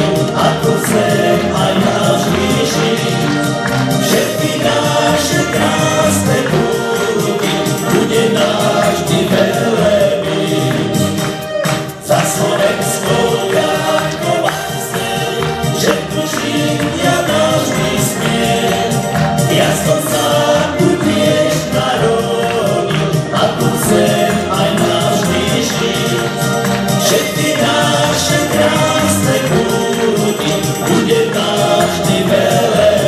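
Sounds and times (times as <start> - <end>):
electronic keyboards: 0.0 - 33.0
men singing: 0.0 - 33.0.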